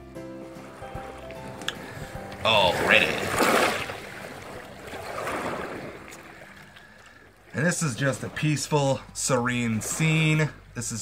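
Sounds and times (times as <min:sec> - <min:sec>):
soft sustained background music: 0:00.0 - 0:11.0.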